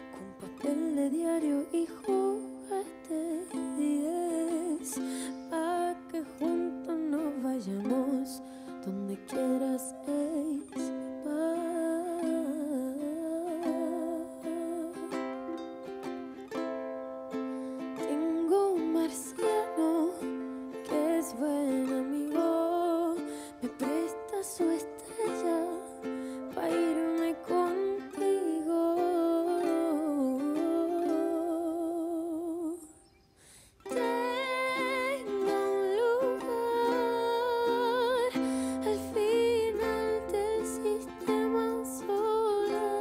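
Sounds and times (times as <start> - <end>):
woman singing with vibrato: 0.0 - 16.6, 18.0 - 33.1, 33.8 - 43.0
plucked acoustic strings: 0.0 - 32.6, 33.8 - 43.0.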